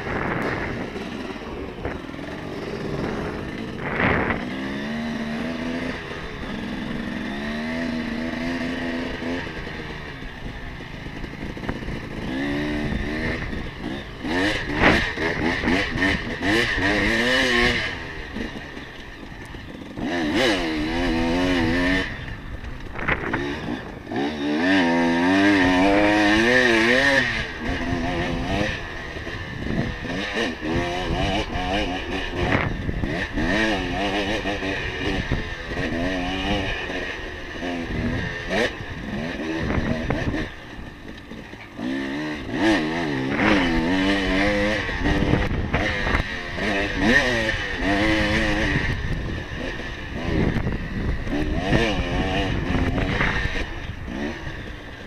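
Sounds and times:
dirt bike engine revving: 0:00.0 - 0:55.0
steady rushing noise: 0:00.0 - 0:55.0.

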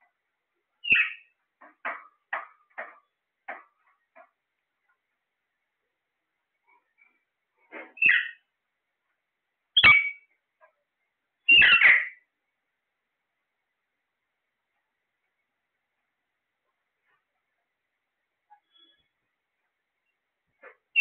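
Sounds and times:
parakeets squawking: 0:08.0 - 0:08.4, 0:11.5 - 0:12.2
faint short chirps: 0:18.5 - 0:19.2.

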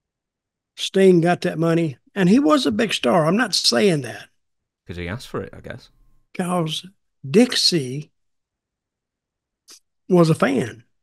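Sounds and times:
man talking: 0:00.8 - 0:04.2, 0:04.9 - 0:08.0.

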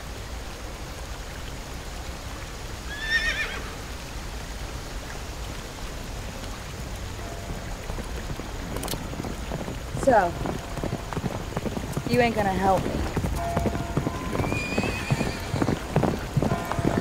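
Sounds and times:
river water rushing: 0:00.0 - 0:17.0
horse whinnying: 0:02.9 - 0:03.7, 0:14.3 - 0:15.9.

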